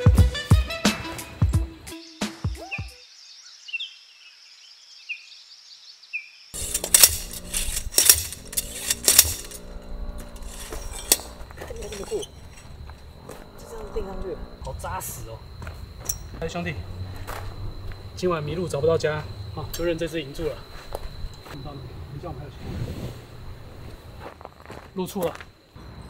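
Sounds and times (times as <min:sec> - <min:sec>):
background music: 0:00.0 - 0:02.9
thin steady high tone: 0:06.6 - 0:22.6
camp gear clinking and knocking: 0:15.8 - 0:16.5
high hiss: 0:18.2 - 0:24.3.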